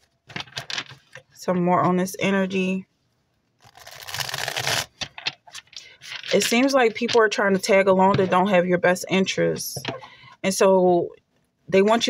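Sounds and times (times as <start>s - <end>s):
cards being riffle-shuffled: 3.7s - 7.2s.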